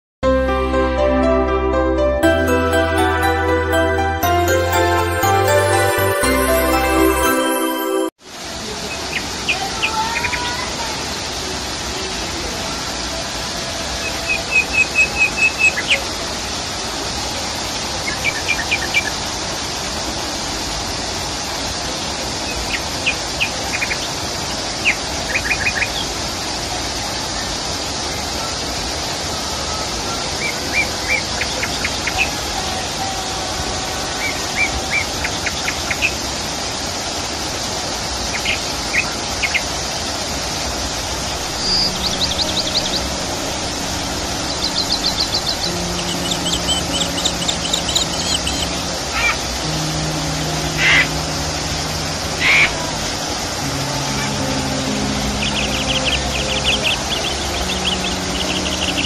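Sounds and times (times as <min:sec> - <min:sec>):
small waterfall splashing into pond: 0:08.2 - 0:33.0, 0:33.7 - 0:41.9
bird chirping: 0:41.4 - 0:49.4.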